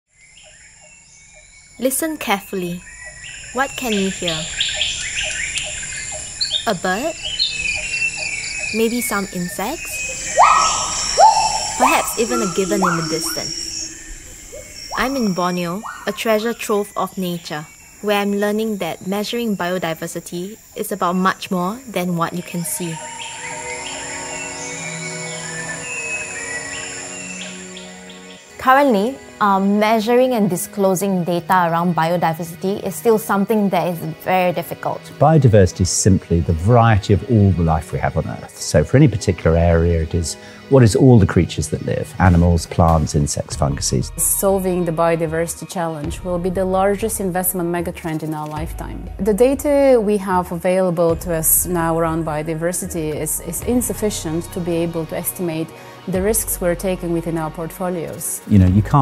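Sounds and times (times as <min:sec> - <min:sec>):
birds chirping: 0:00.2 - 0:44.9
high-pitched insect drone: 0:00.4 - 0:35.3
ambient music held notes: 0:02.8 - 0:18.7, 0:21.7 - 0:30.3, 0:35.1 - 0:44.8
short low animal calls: 0:10.4 - 0:13.5.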